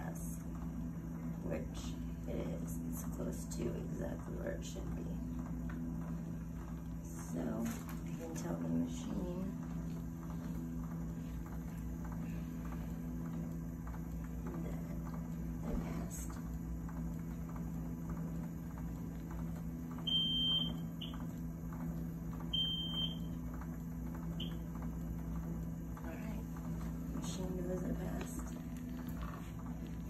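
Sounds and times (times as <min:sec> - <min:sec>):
low hum of equipment: 0:00.0 - 0:30.0.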